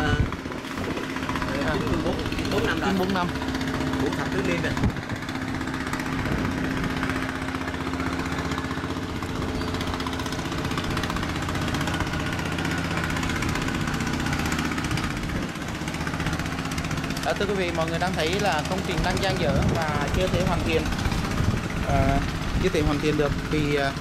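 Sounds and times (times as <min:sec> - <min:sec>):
engine running steadily: 0:00.0 - 0:24.0.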